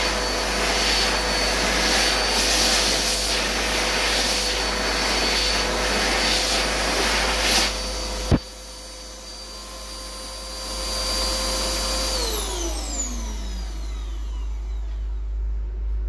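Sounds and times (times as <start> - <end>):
hand dryer air blast: 0.0 - 13.8
hand dryer motor whine: 0.0 - 16.0.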